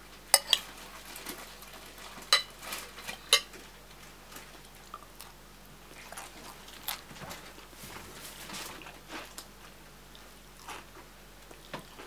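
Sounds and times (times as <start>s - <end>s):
close-up chewing: 3.9s - 7.8s.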